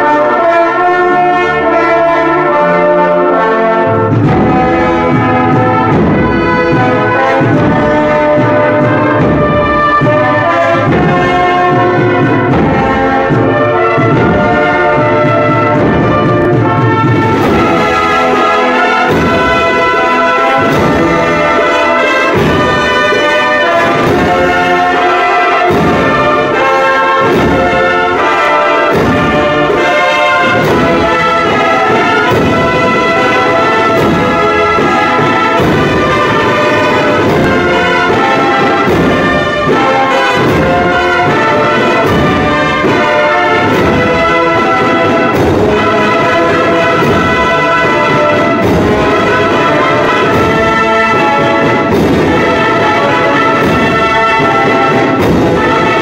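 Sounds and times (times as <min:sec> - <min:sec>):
brass band playing slow march: 0:00.0 - 0:56.0
percussion strikes: 0:00.0 - 0:56.0.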